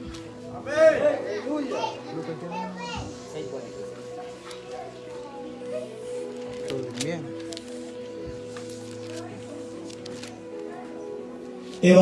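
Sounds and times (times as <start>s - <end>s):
children calling and chattering: 0.0s - 12.0s.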